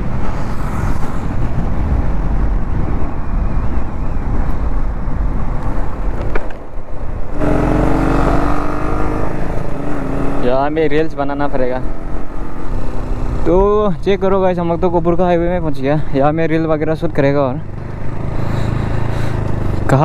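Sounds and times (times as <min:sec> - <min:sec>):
wind noise on microphone: 0:00.0 - 0:10.4.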